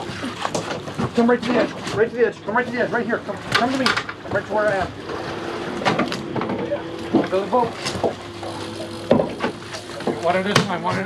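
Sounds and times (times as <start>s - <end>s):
steady hum: 0.0s - 11.0s.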